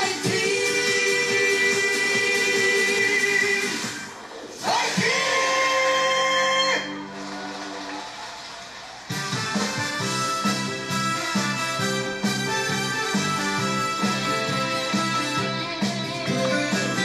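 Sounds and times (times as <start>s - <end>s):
live band playing: 9.1s - 17.0s.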